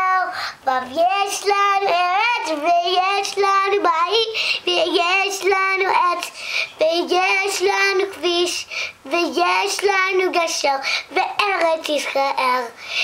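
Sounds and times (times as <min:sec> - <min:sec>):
girl singing unaccompanied: 0:00.0 - 0:13.0.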